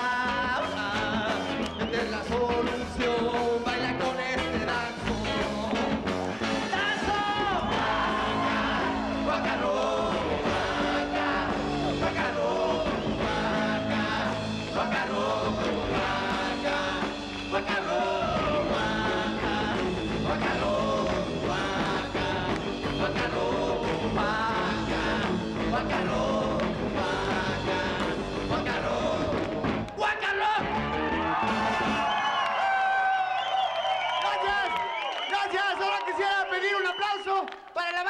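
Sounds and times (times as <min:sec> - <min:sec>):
live rock band playing: 0:00.0 - 0:29.9.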